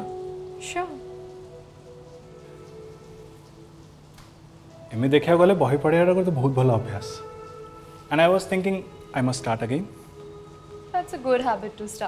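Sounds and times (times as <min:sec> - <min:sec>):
quiet background music: 0:00.0 - 0:12.0
steady rain hiss: 0:00.0 - 0:12.0.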